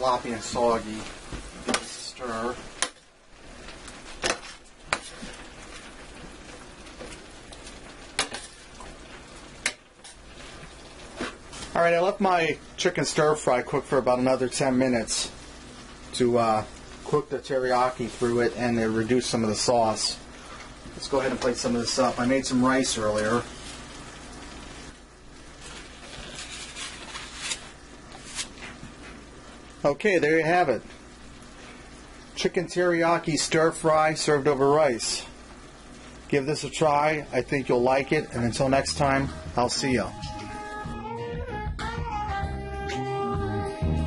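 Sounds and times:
food sizzling in skillet: 0.0s - 40.9s.

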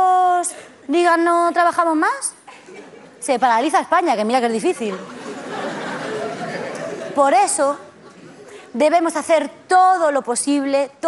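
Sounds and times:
audience laughing and clapping: 4.7s - 8.6s.

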